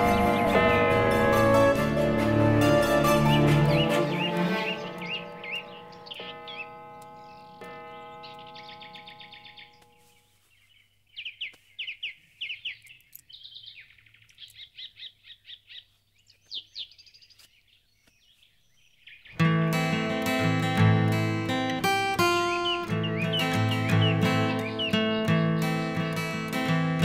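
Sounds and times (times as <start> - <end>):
held musical notes: 0.0 - 10.6, 19.4 - 27.0
small birds chirping: 3.2 - 27.0.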